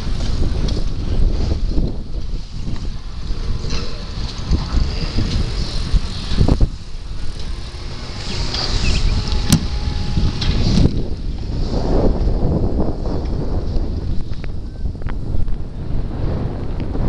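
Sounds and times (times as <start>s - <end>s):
wind rumbling on microphone: 0.0s - 17.0s.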